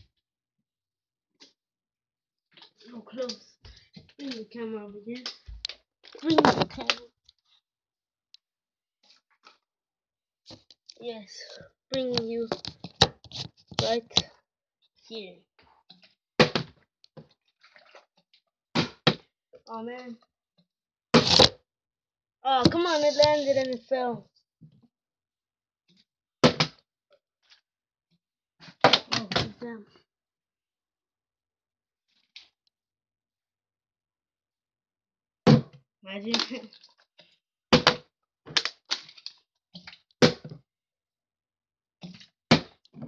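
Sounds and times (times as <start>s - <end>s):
person speaking: 4.2s - 5.3s, 6.2s - 7.1s, 11.0s - 12.6s, 13.8s - 14.3s, 22.4s - 24.2s
water sloshing in plastic bottle: 17.5s - 18.4s.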